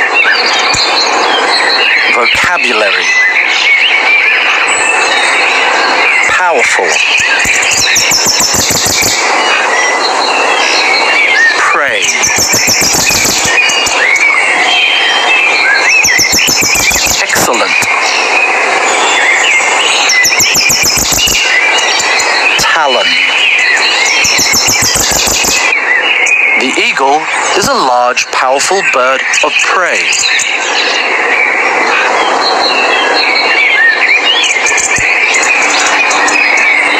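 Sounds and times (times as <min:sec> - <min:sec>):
eagle calls: 0:00.0 - 0:27.7, 0:28.8 - 0:36.9
dense steady background noise: 0:00.0 - 0:36.9.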